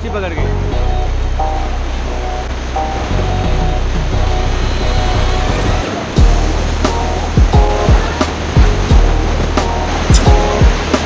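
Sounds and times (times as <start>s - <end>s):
background music: 0.0s - 11.0s
whitewater rapids rushing: 1.8s - 11.0s.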